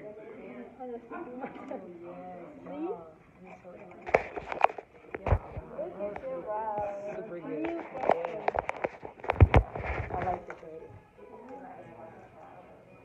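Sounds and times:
faint background music: 0.0 - 13.0.

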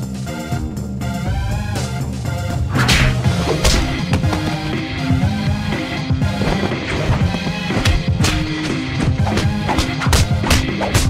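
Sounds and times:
loud background music: 0.0 - 11.0
whip-like swoosh and hit: 2.7 - 3.9.

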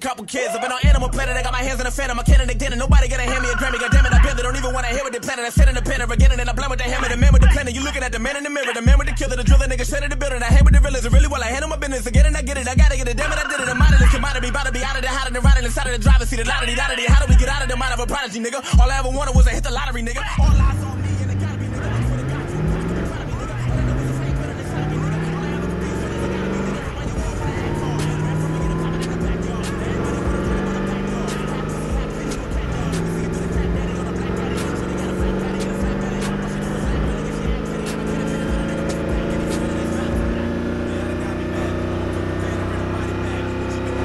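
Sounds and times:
sports car engine accelerating: 0.9 - 8.3, 8.9 - 18.2, 18.8 - 44.0.

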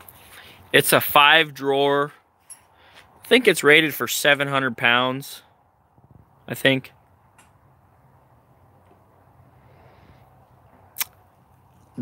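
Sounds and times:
sharp click: 11.0 - 11.2.

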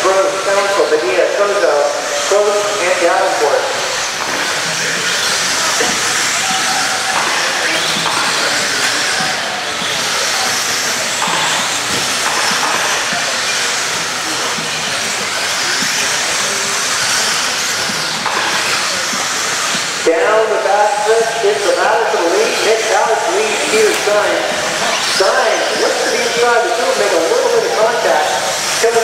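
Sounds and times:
rc cars motor whine: 0.0 - 29.0.

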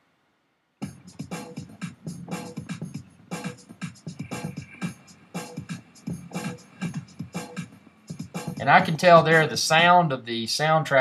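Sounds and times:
background music with steady beat: 0.8 - 9.9.

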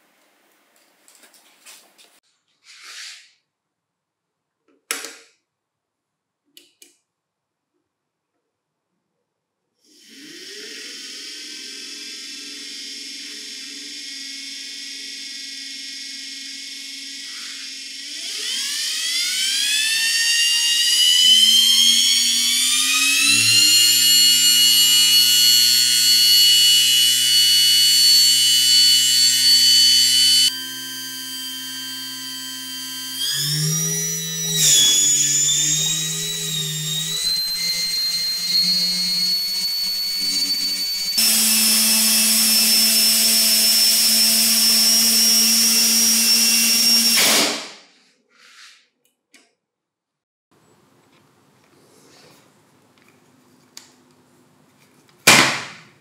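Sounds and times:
electric motor whine: 10.1 - 47.2.

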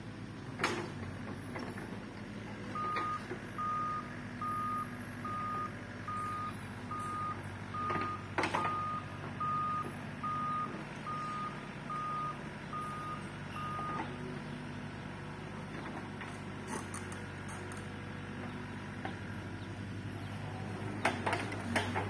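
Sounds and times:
excavator engine running: 0.0 - 22.0
excavator travel alarm beeping: 2.6 - 14.2.

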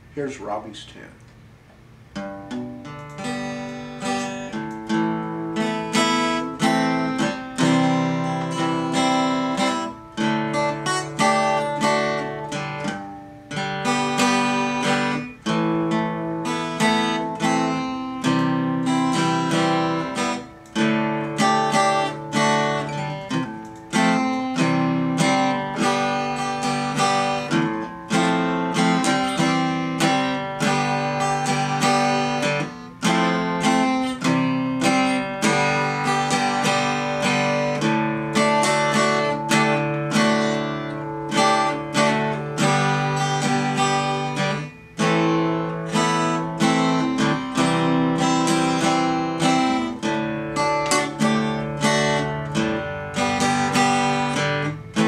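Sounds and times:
acoustic guitar playing: 1.4 - 55.0.

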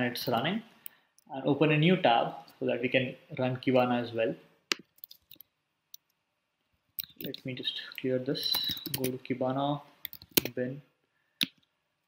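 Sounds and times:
computer keys clicking: 8.5 - 9.1, 10.0 - 10.5.

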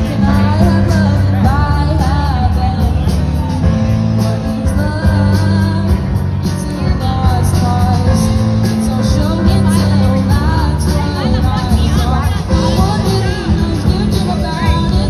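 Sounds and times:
bass guitar: 0.0 - 15.0
drums: 0.0 - 15.0
girl singing lead: 0.0 - 15.0
keyboard: 0.0 - 15.0.

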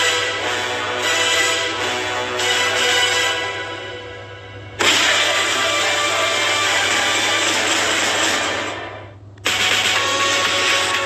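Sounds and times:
tv ident music: 0.0 - 11.0.

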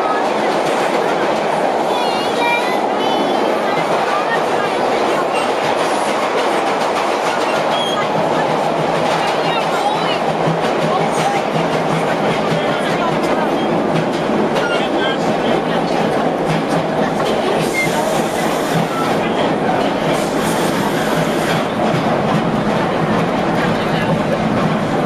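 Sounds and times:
subway train rumble: 0.0 - 25.0
hiss: 17.6 - 18.9, 20.2 - 21.7.

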